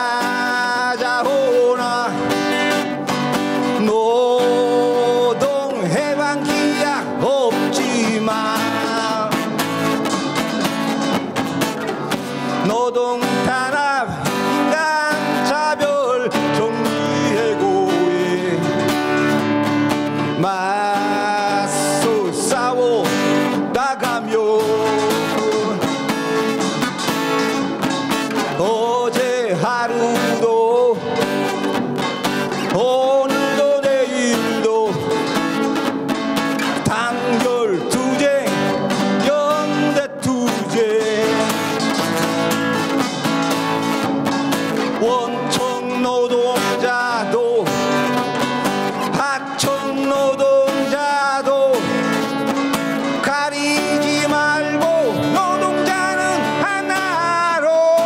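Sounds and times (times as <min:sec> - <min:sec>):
person singing: 0:00.0 - 0:11.0, 0:11.9 - 0:58.0
strummed acoustic guitar: 0:00.0 - 0:58.0.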